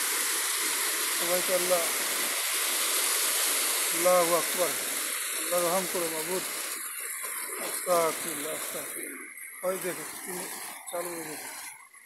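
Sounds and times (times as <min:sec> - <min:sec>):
heavy rain and wind: 0:00.0 - 0:11.7.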